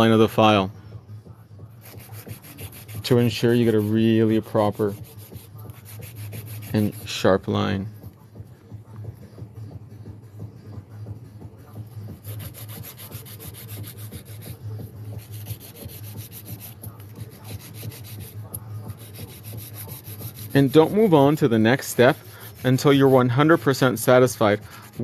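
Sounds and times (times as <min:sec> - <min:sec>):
nail file scraping: 0:01.8 - 0:03.9, 0:12.2 - 0:23.3.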